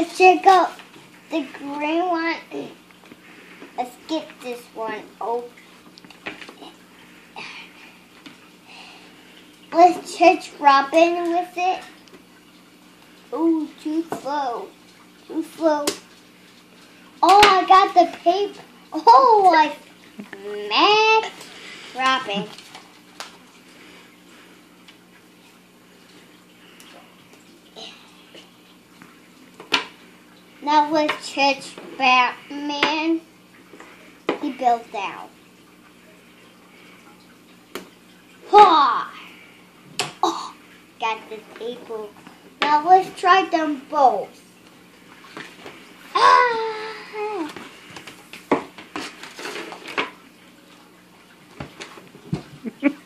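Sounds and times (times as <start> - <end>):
faint steady hum: 0.0 - 53.0.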